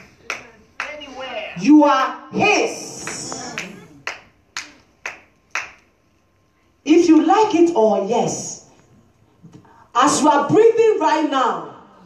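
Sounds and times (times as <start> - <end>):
sharp claps with echo: 0.0 - 1.1, 2.9 - 5.9.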